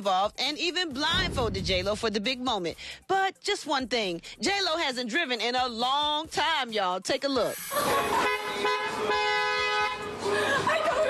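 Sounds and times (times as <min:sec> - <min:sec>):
woman laughing: 0:07.6 - 0:08.5, 0:10.2 - 0:11.0
car horn long note: 0:08.2 - 0:10.1.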